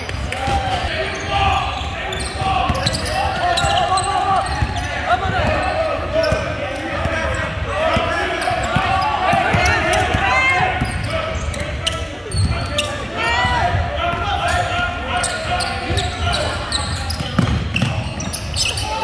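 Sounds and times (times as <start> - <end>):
sneaker squeaks: 0.0 - 13.6, 14.4 - 19.0
chatter of voices: 0.0 - 19.0.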